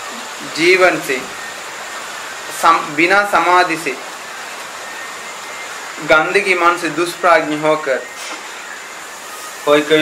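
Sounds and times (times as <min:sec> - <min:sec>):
faint high-pitched tone: 0:00.0 - 0:10.0
steady background hiss: 0:00.0 - 0:10.0.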